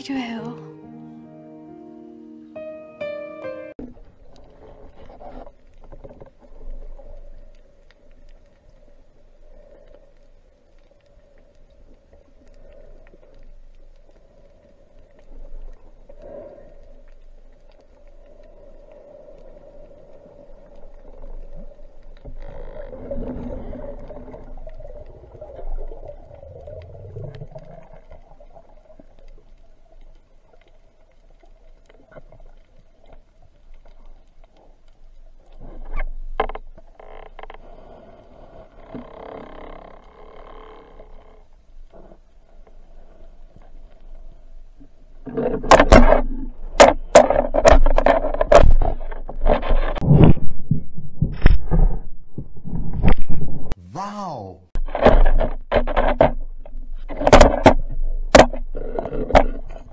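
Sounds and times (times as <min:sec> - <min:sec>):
muffled underwater noise: 0:53.7 - 0:54.8
rush of water with rumbling: 0:54.8 - 0:59.9.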